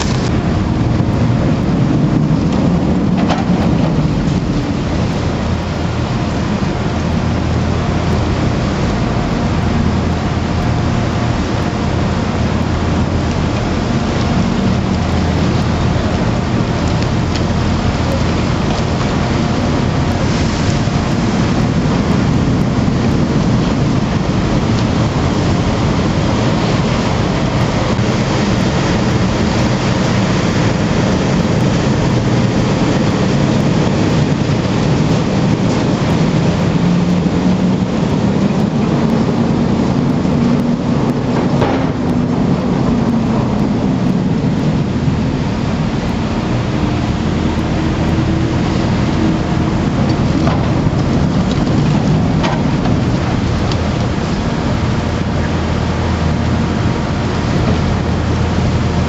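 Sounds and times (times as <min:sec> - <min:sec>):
heavy machinery running: 0:00.0 - 0:59.0
low machine hum: 0:00.0 - 0:59.0.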